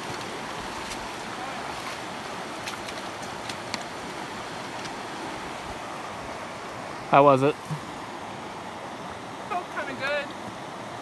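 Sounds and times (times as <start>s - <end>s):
people wading through water: 0.0s - 10.8s
creek rushing over rocks: 0.0s - 11.0s.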